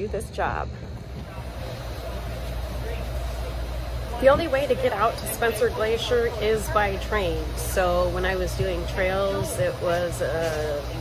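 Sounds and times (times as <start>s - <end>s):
train rumbling inside carriage: 0.0s - 11.0s.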